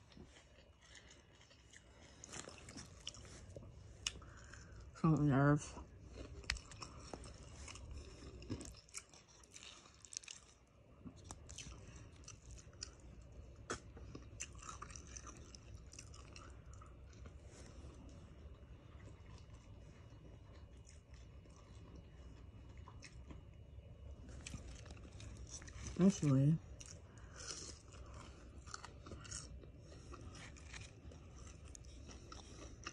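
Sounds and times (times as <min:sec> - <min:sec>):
close-up chewing with crunches: 0:00.0 - 0:32.9.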